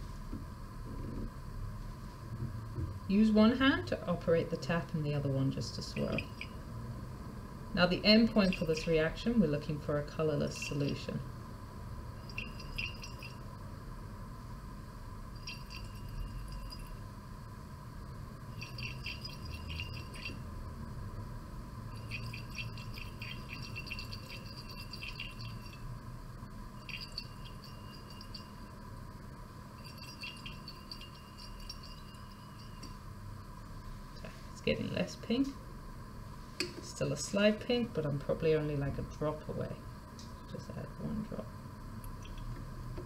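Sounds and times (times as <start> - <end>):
glass flask rattling: 12.2 - 13.4, 15.3 - 17.0, 18.5 - 20.4, 21.9 - 25.8, 26.8 - 28.7, 29.8 - 33.0.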